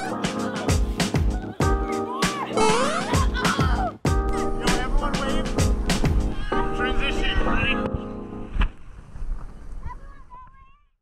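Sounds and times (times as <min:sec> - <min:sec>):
music with beat and singing: 0:00.0 - 0:06.4.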